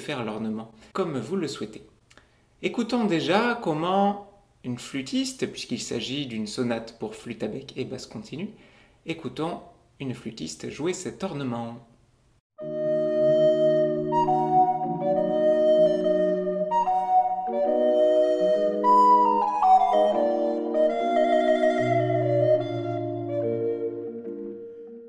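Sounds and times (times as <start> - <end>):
recorder and continuo baroque music: 12.6 - 25.0.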